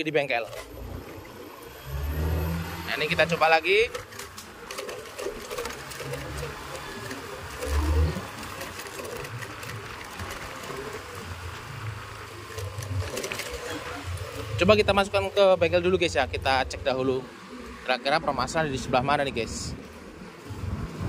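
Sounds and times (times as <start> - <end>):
scooter engine running at low revs: 19.0 - 21.0
tyre and wind noise: 19.5 - 21.0.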